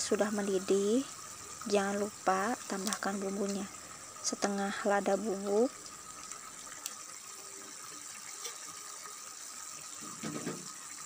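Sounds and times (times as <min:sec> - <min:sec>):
broth boiling in a wok: 0:00.0 - 0:11.0.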